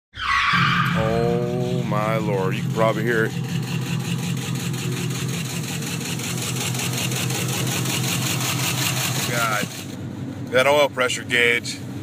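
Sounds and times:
engine running with rod knock: 1.4s - 10.0s.

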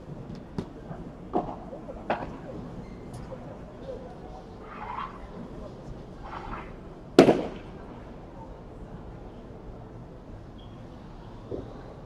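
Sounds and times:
sharp loud ball crack: 7.2s - 7.7s.

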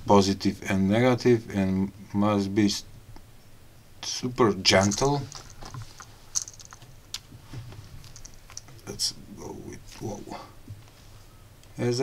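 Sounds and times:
tools clicking on wires: 4.8s - 7.3s, 8.0s - 8.9s.

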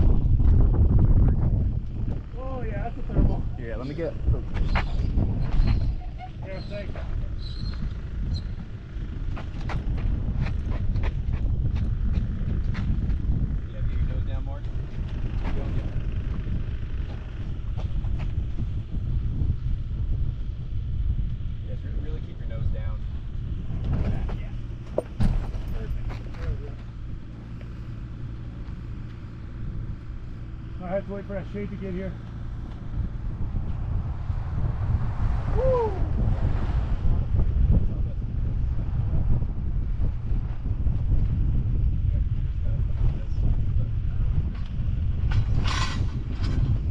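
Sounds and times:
wind buffeting microphone: 0.0s - 46.9s.

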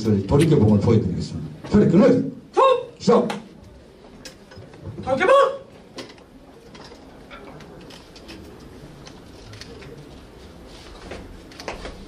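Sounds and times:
man shouting: 2.5s - 3.3s, 5.1s - 5.7s.

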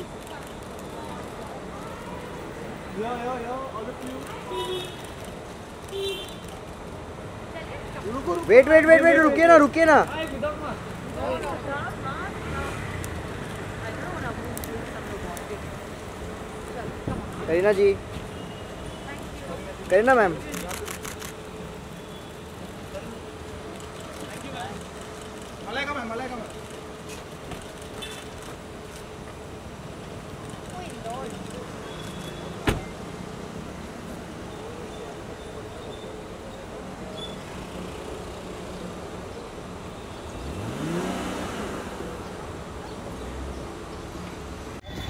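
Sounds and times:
traffic: 0.0s - 45.0s
vehicle engine accelerating: 40.3s - 43.6s.

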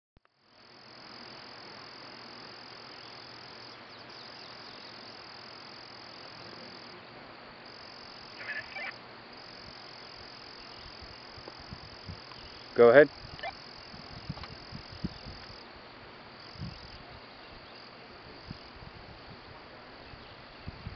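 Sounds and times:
high-pitched animal chorus: 8.3s - 9.0s
short louder animal call: 8.3s - 9.0s.

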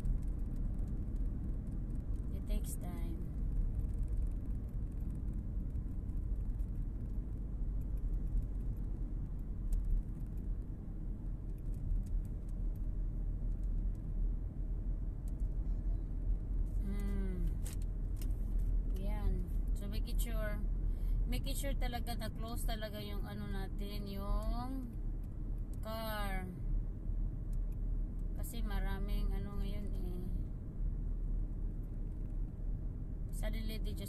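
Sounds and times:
car road and engine rumble: 0.0s - 34.0s.

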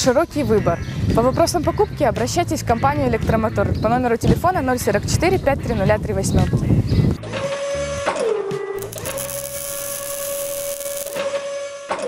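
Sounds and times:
robotic motor whine: 8.8s - 11.2s
sharp clicks: 8.8s - 11.2s.

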